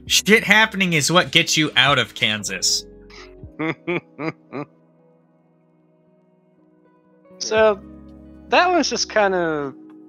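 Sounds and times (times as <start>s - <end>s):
quiet music bed: 0.0s - 10.0s
person laughing: 3.5s - 4.7s.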